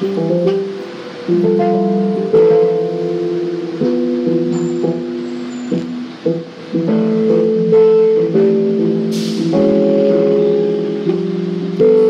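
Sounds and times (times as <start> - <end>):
keyboard playing held chords: 0.0 - 12.0.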